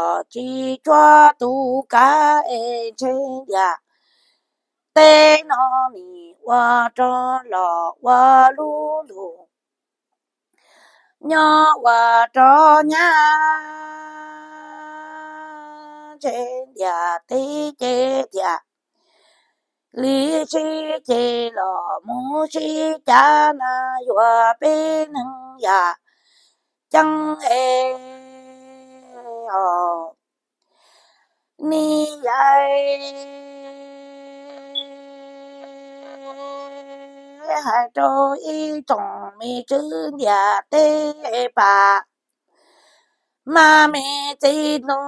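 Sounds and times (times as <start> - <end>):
person singing long steady note: 27.1 - 29.5, 32.6 - 38.0.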